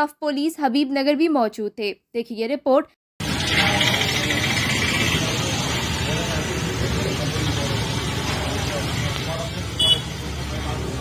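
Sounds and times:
road traffic: 0:03.2 - 0:11.0.

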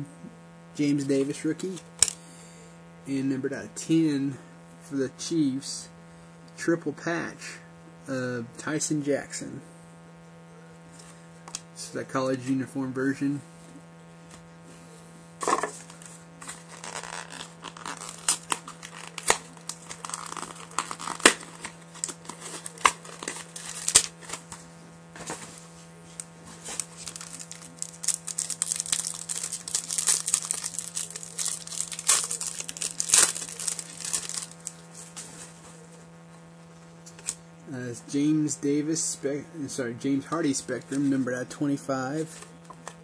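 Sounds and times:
low electrical hum: 0:00.0 - 0:43.0
plastic wrapping crinkling and tearing: 0:15.5 - 0:24.6, 0:25.2 - 0:35.3.

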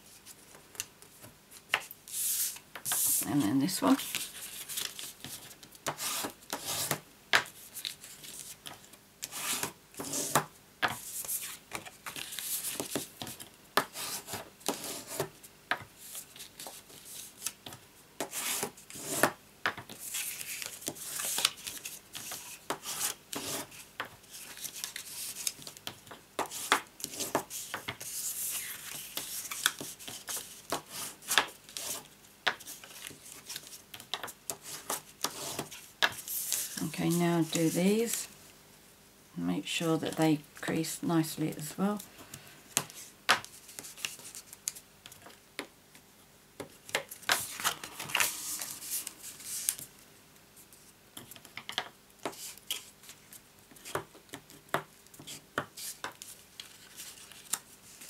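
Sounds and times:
cardstock folding and rubbing: 0:00.0 - 0:03.4, 0:04.0 - 0:15.4, 0:19.9 - 0:33.8, 0:34.5 - 0:38.2, 0:42.8 - 0:44.8, 0:46.8 - 0:49.9, 0:55.2 - 0:58.0
card scraping on mat: 0:47.3 - 0:49.8.

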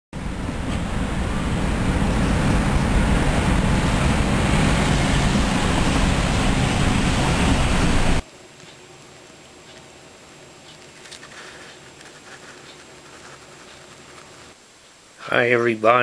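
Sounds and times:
road noise rumble: 0:00.1 - 0:15.7
wind on microphone: 0:00.2 - 0:08.2.

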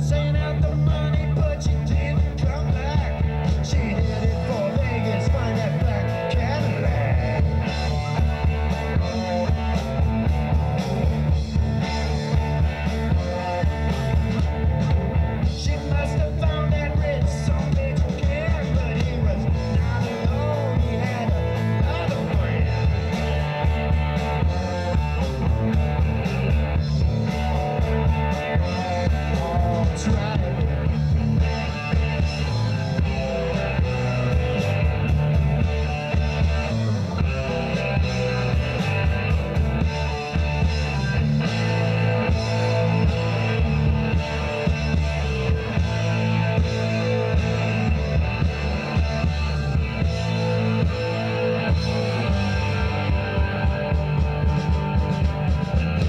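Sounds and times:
bass guitar: 0:00.0 - 0:56.0
drum kit: 0:00.0 - 0:56.0
electric guitars: 0:00.0 - 0:56.0.

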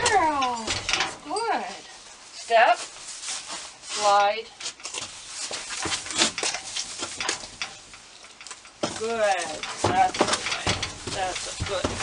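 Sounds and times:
horse hooves stepping: 0:00.0 - 0:12.0.

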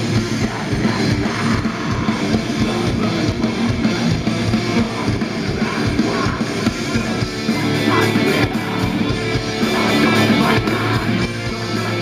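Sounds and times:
heavy metal band playing live: 0:00.0 - 0:12.0.

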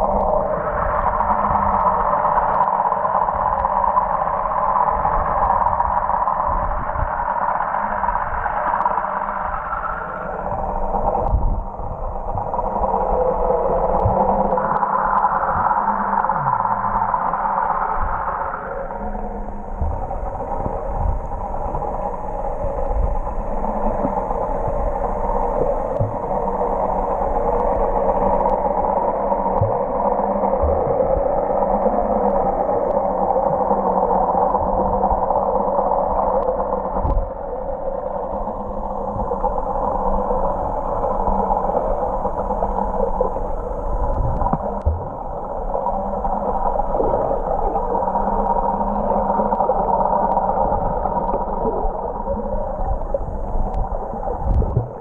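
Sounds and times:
faint low hum: 0:00.0 - 0:55.0
muffled underwater water rush: 0:00.0 - 0:55.0.

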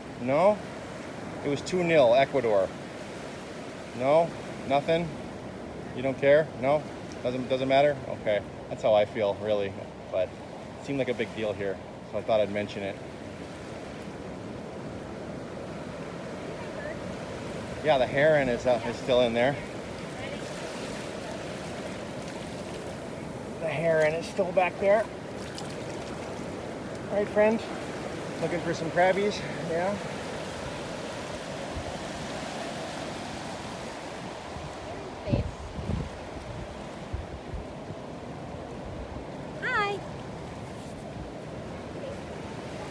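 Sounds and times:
surf rushing: 0:00.0 - 0:42.9
wind: 0:00.0 - 0:42.9
wind buffeting microphone: 0:30.3 - 0:39.8.

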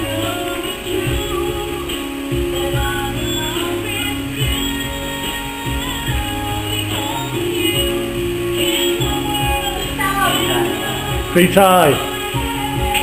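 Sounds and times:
music with guitar and beat: 0:00.0 - 0:13.0.

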